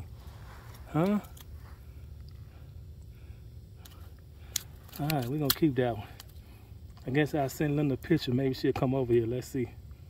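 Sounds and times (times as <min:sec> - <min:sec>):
low steady rumble: 0:00.0 - 0:10.0
faint handling ticks: 0:03.8 - 0:09.6.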